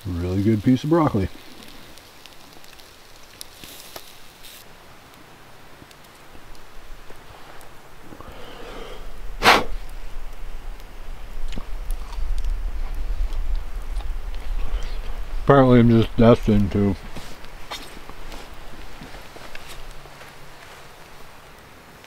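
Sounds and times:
campfire coals crackling: 0.0 - 22.0
low rumble: 9.1 - 17.6.

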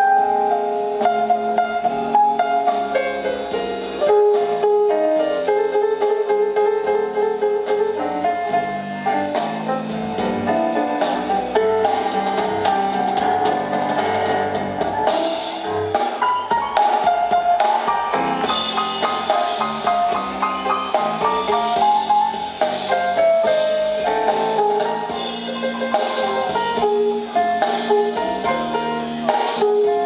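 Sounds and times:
live blues band over pa: 0.0 - 30.0.

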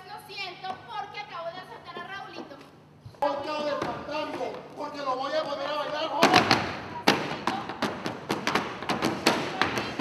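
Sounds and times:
feet stamping on wooden stage: 6.2 - 10.0.

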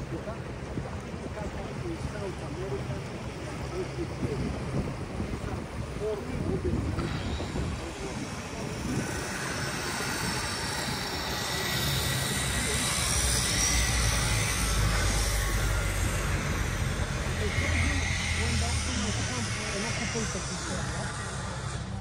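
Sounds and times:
outboard motor rumbling: 0.0 - 22.0
water and wind rushing: 0.0 - 22.0.

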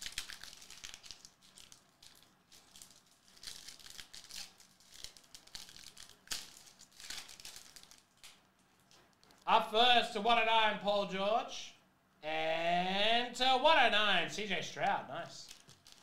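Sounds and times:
foil wrapper crinkling and tearing: 0.0 - 9.5, 15.4 - 16.0.

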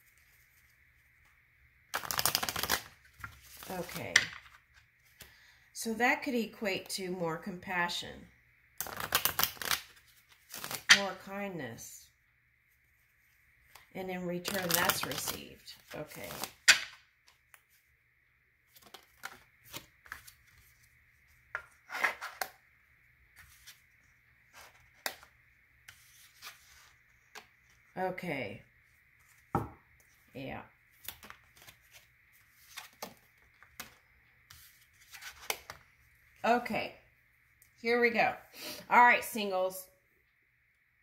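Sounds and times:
cards being shuffled: 1.9 - 5.3, 8.8 - 11.1, 13.6 - 17.8, 18.7 - 22.6, 24.5 - 27.8, 30.9 - 35.8.

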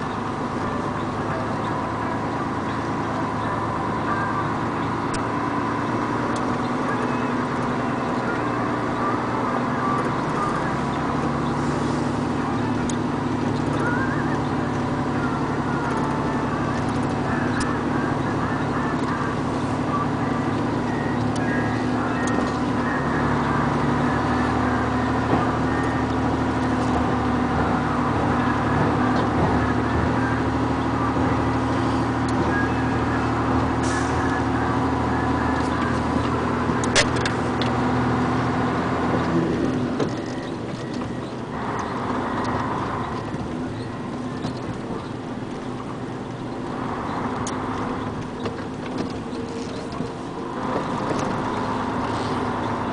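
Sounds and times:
vehicle engine droning: 0.0 - 52.9
sharp click: 36.8 - 37.8.

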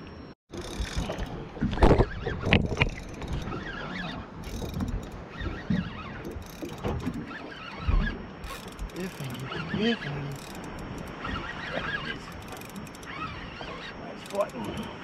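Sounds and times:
fishing reel winding and clicking: 0.5 - 1.2, 2.9 - 3.6, 4.4 - 5.3, 6.2 - 7.2, 8.4 - 15.0.

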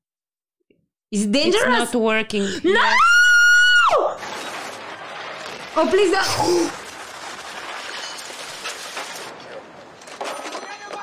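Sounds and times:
crackling of burning wreck: 2.9 - 11.0.

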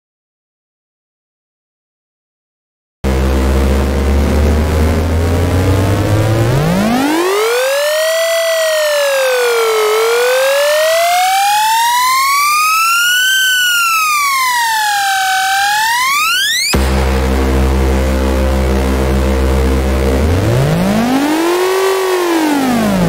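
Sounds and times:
synthesized rising buzzy tone: 3.0 - 23.0.

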